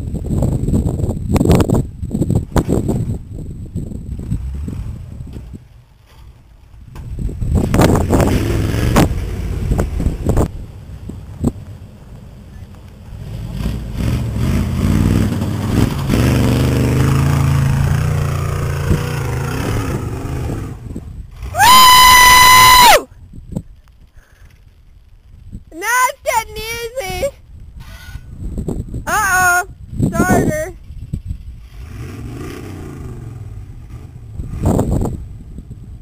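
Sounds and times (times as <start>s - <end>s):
truck engine revving: 7.6s - 10.5s, 13.0s - 21.6s, 31.6s - 35.3s.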